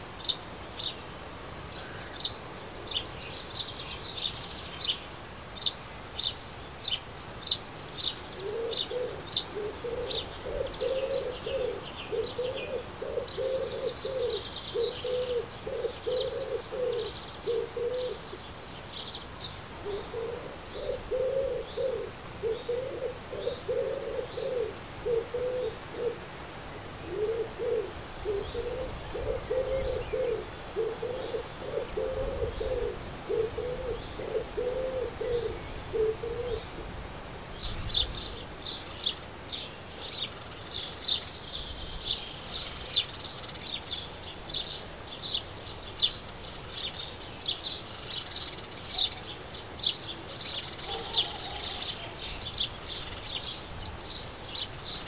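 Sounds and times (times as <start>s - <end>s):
small birds chirping: 0.2s - 1.1s, 1.7s - 26.2s, 37.5s - 55.0s
pigeon cooing: 8.4s - 18.3s, 19.8s - 26.2s, 27.0s - 36.9s, 50.3s - 52.4s
faint high bird call: 50.4s - 52.5s.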